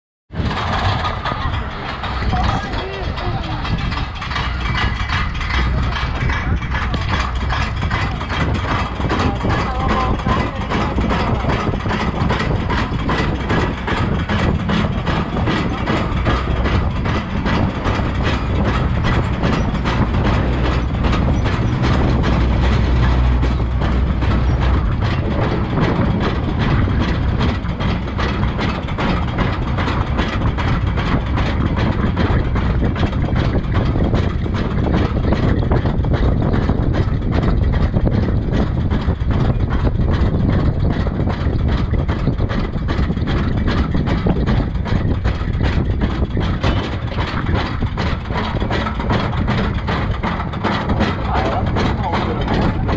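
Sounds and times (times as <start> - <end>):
rapid anti-rollback clacks: 0.3 - 52.9
roller coaster lift rumble: 0.3 - 52.9.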